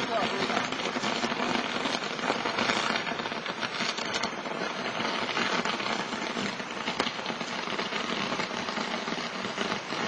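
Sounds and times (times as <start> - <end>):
firework crackle and hiss: 0.0 - 10.0.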